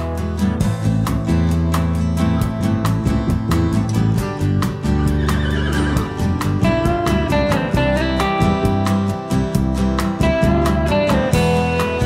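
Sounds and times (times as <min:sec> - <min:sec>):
background guitar music: 0:00.0 - 0:12.0
horse whinnying: 0:05.0 - 0:06.6.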